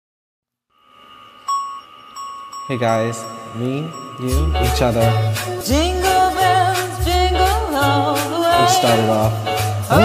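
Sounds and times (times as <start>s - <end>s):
bright bell-like note ringing: 0.7s - 6.6s
chime tones: 0.7s - 6.6s.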